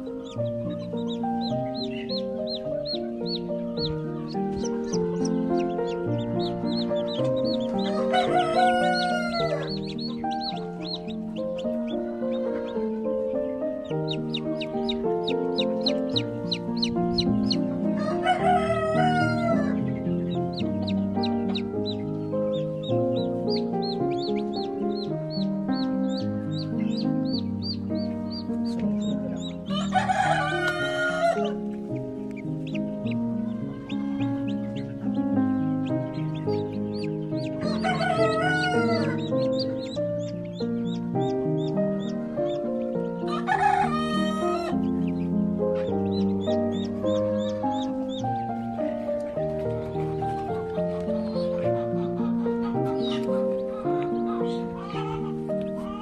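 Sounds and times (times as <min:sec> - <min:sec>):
background music with held notes: 0:00.0 - 0:56.0
rooster crowing: 0:04.8 - 0:11.0, 0:16.8 - 0:19.8, 0:29.7 - 0:31.6, 0:33.4 - 0:34.9, 0:37.6 - 0:39.6, 0:43.2 - 0:44.8.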